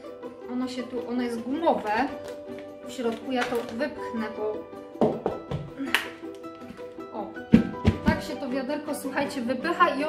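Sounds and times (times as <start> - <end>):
rubber bucket popping open: 1.8 - 3.9, 5.0 - 8.4.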